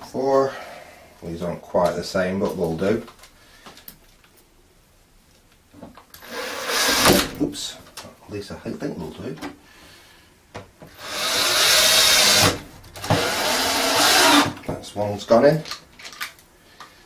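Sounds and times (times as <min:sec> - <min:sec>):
cordless drill driving screws: 0:06.2 - 0:07.2, 0:10.9 - 0:14.6.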